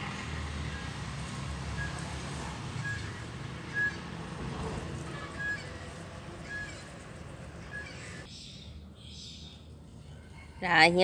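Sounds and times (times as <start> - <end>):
bird calling with short high note: 5.2 - 5.8.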